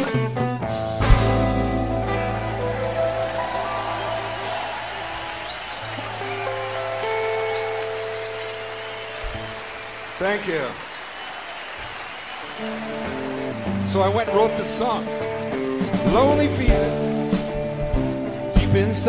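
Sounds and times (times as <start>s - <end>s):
upright bass notes: 0.0s - 5.3s, 12.8s - 19.0s
electric guitar played slowly: 0.0s - 9.7s, 12.6s - 19.0s.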